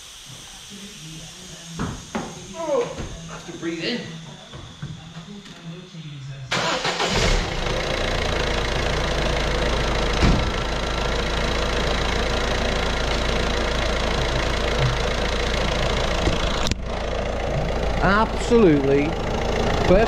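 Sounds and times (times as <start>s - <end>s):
diesel engine starting and idling: 6.3s - 20.0s
short thump: 10.2s - 10.5s.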